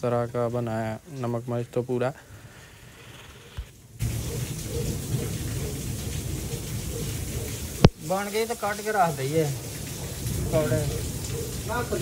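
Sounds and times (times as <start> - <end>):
heavy rain: 3.9 - 12.0.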